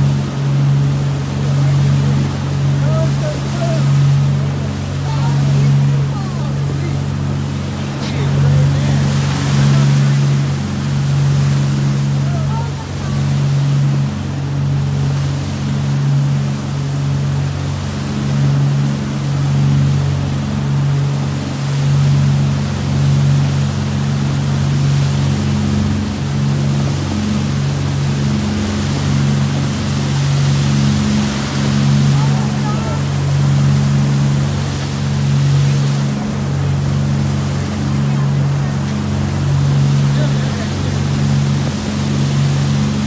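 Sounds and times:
motorboat engine running: 0.0s - 43.0s
wake water splashing: 0.0s - 43.0s.

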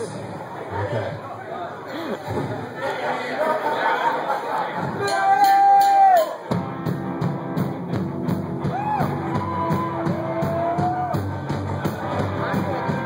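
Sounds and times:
rock band playing live: 4.8s - 13.0s
steady drum beat: 4.8s - 13.0s.

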